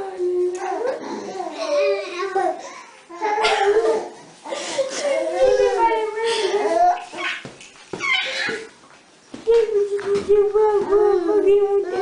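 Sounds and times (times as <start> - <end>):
infant squealing: 7.1 - 8.7
infant vocal sound: 9.5 - 12.0.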